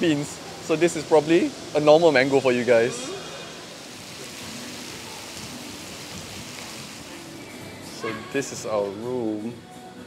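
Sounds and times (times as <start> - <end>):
faint distant voices: 0.0 - 9.6
steady background hiss: 0.0 - 10.0.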